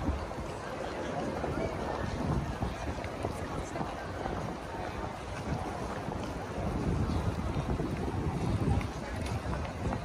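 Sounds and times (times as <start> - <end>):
faint street ambience: 0.0 - 10.0
wind buffeting microphone: 0.0 - 10.0.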